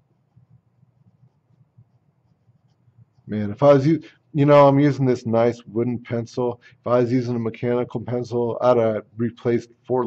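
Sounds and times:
pencil scratching on paper: 0.1 - 3.4.

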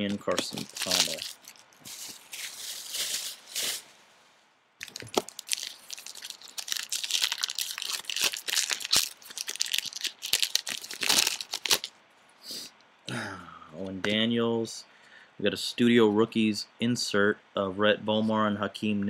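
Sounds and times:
wrapper crinkling: 0.0 - 4.0, 4.8 - 12.0.

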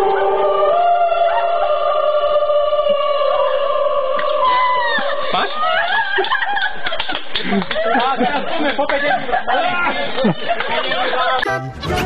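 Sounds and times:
people laughing and snickering: 4.6 - 12.0.

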